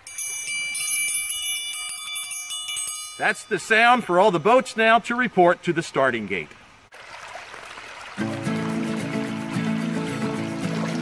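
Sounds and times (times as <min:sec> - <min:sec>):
wind chimes ringing: 0:00.0 - 0:04.8.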